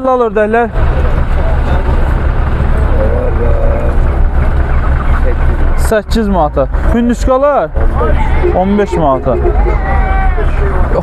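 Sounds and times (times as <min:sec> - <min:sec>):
steady low rumble: 0:00.6 - 0:11.0.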